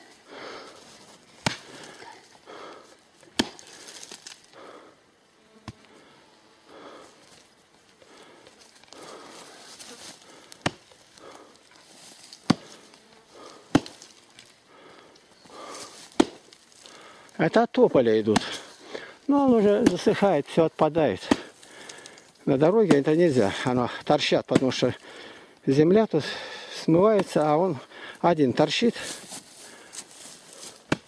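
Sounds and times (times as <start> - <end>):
axe chopping roots: 1.4 - 2.1, 3.3 - 4.4, 10.4 - 11.4, 12.2 - 12.8, 13.4 - 14.5, 15.6 - 16.9, 18.2 - 20.4, 21.1 - 25.1, 27.0 - 27.6, 30.0 - 31.0.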